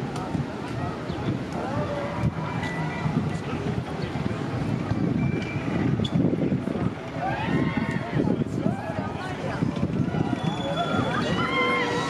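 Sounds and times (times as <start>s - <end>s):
people talking: 0.0s - 12.0s
roller coaster rumbling on track: 0.0s - 12.0s.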